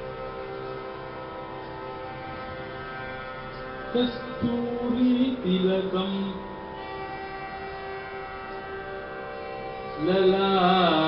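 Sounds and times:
harmonium holding a chord: 0:00.0 - 0:11.0.

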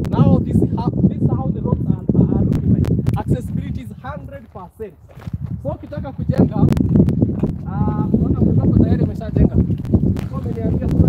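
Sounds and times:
person speaking: 0:00.0 - 0:06.7, 0:07.6 - 0:11.0
footsteps on gravel: 0:02.5 - 0:11.0.

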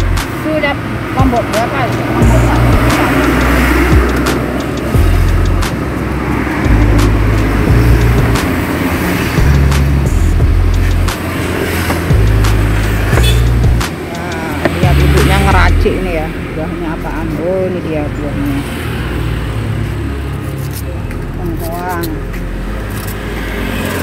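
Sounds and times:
heavy low rumble: 0:00.9 - 0:11.2, 0:12.0 - 0:18.5.

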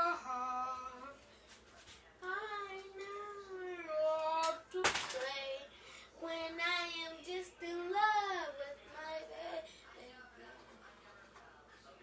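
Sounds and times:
girl singing: 0:00.0 - 0:01.2, 0:02.2 - 0:09.7.

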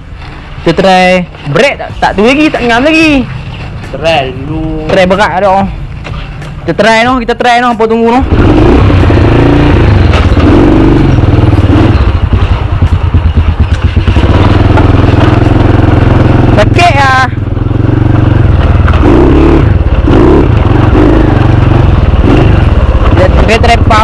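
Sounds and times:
motorcycle engine running: 0:01.3 - 0:24.0.

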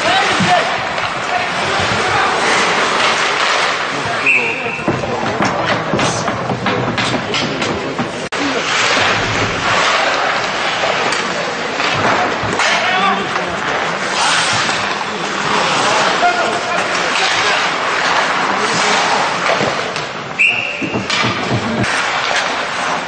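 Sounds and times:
hockey sticks knocking: 0:00.0 - 0:23.0
skates scraping ice: 0:00.0 - 0:23.0.

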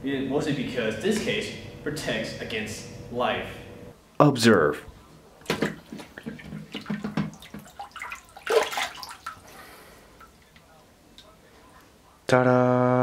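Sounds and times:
tap water splashing on phone: 0:05.5 - 0:09.4.

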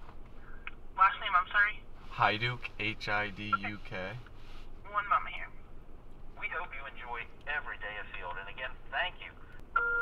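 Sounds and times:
person speaking over telephone: 0:01.0 - 0:04.2, 0:04.9 - 0:05.5, 0:06.4 - 0:09.4.

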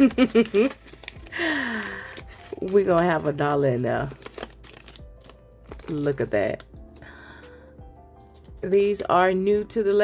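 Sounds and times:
plastic crinkles and clicks: 0:00.0 - 0:07.1
faint background music: 0:00.0 - 0:10.0.

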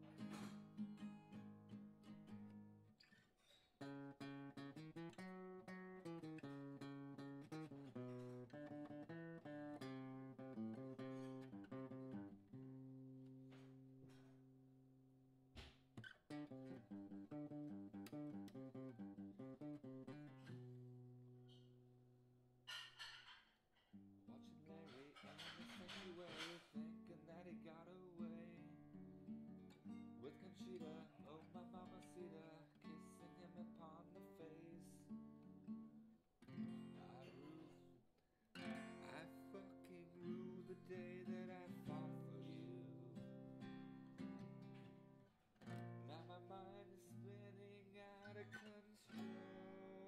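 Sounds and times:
acoustic guitar strummed and picked: 0:00.0 - 0:14.6, 0:15.6 - 0:21.9, 0:22.6 - 0:50.0.

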